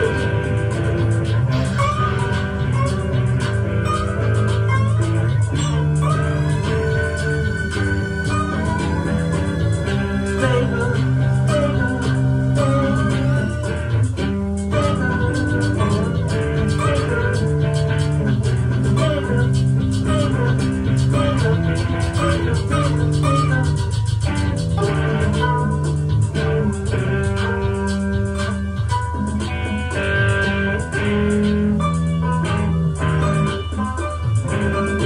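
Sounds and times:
fast ticking percussion: 0.0 - 35.0
steady low bass: 0.0 - 35.0
sustained melodic notes: 0.0 - 35.0.

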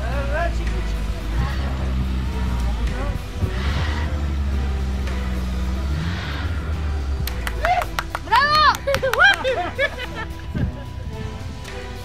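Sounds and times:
engine running at low revs: 0.0 - 12.0
music: 0.0 - 12.0.

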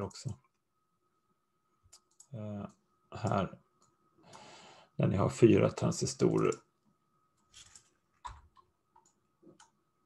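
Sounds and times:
computer mouse clicks: 1.9 - 2.3, 6.3 - 6.6, 7.6 - 9.8.

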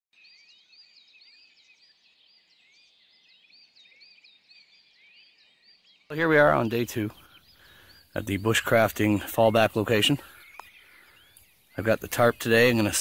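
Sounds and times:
high chirping calls: 0.2 - 13.0.

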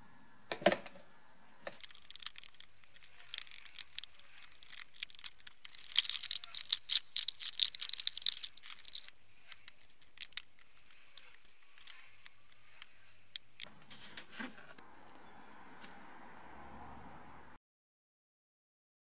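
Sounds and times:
stiff brush scrubbing metal parts: 1.8 - 14.8.

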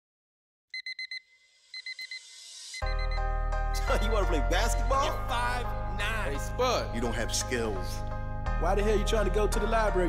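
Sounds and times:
alarm clock beeping: 0.7 - 3.3.

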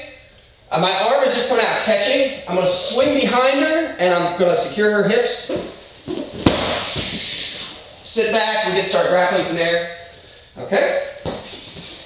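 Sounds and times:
bodies thumping onto gym mat: 5.4 - 7.5, 11.2 - 12.0.

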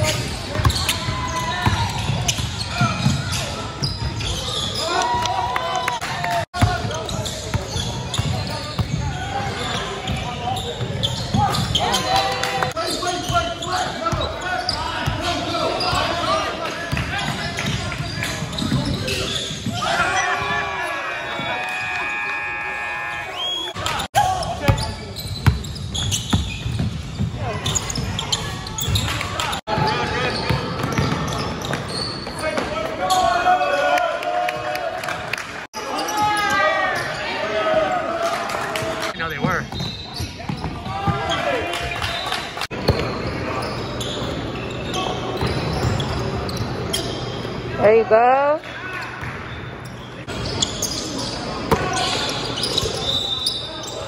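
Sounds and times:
basketball bouncing on court: 0.1 - 4.4, 6.6 - 11.8, 24.5 - 29.1, 29.7 - 32.4, 39.4 - 41.3.

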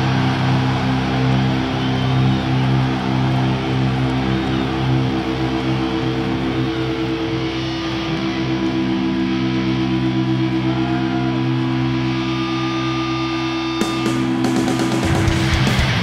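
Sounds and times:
distorted electric guitars: 0.0 - 16.0
heavy metal band playing live: 0.0 - 16.0.

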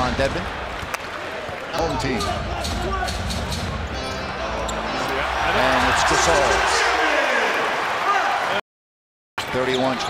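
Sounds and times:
music playing: 2.1 - 6.9.

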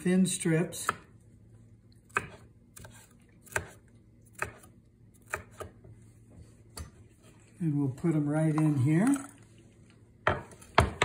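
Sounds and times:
knife chopping on wooden board: 0.8 - 1.1, 2.1 - 5.8, 10.3 - 11.0.

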